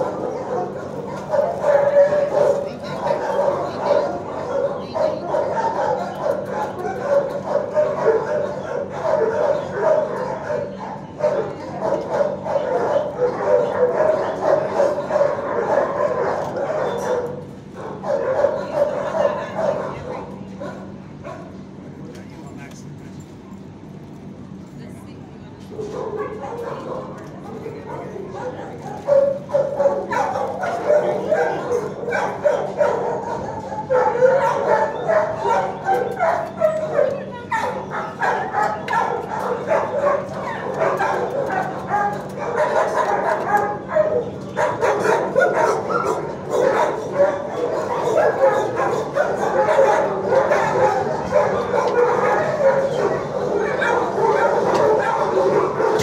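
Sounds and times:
many dogs barking and yelping: 0.0 - 22.6, 25.6 - 56.0.

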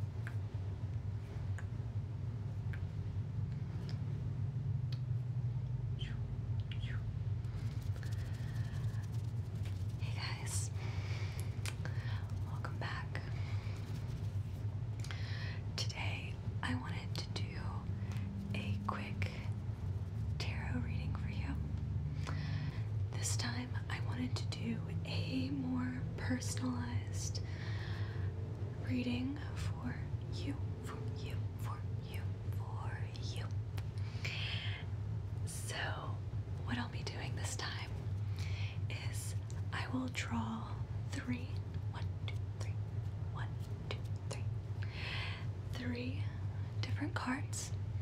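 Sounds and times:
steady low hum: 0.0 - 48.0
woman whispering: 6.0 - 14.2, 15.6 - 21.7, 23.1 - 27.4, 28.7 - 33.6, 34.2 - 47.8.

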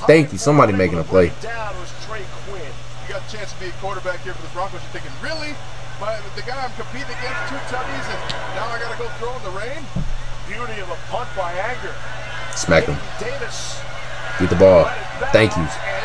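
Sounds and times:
men talking: 0.0 - 16.0
steady low hum: 0.0 - 16.0.

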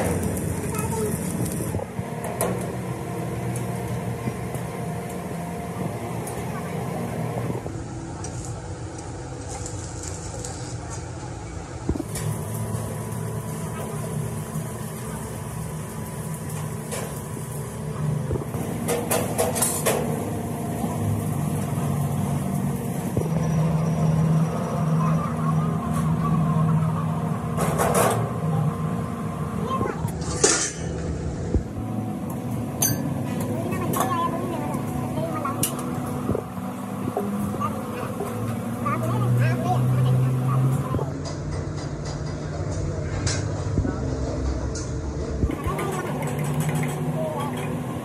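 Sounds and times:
steady low engine hum: 0.0 - 48.0.

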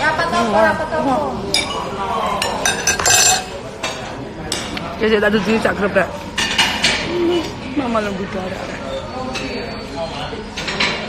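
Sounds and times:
cutlery clinking on plates: 1.5 - 4.8, 6.3 - 7.1, 10.5 - 11.0.

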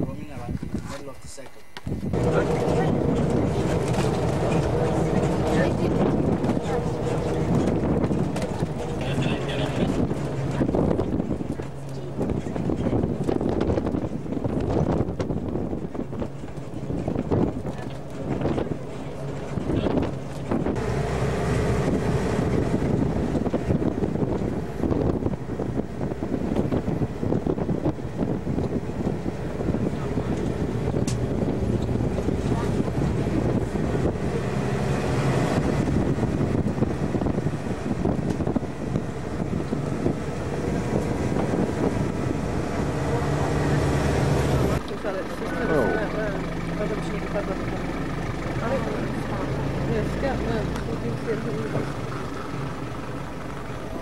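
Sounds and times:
wind on microphone: 0.0 - 1.2, 1.8 - 44.9
vehicle engine running: 0.0 - 54.0.

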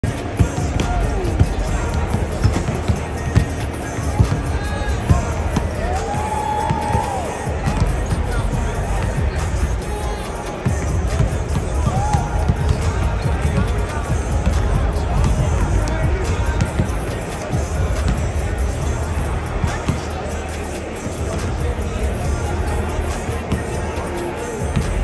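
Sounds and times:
arena music: 0.0 - 25.0
crowd chatter: 0.0 - 25.0
voices: 0.0 - 25.0.

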